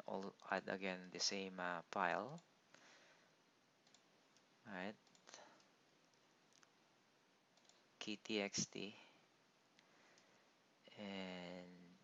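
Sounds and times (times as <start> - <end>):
faint computer mouse clicks: 3.8 - 5.7, 7.6 - 7.8.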